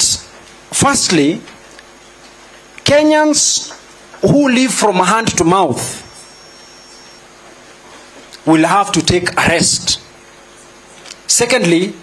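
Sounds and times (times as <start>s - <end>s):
faint high-pitched whine: 5.2s - 7.2s.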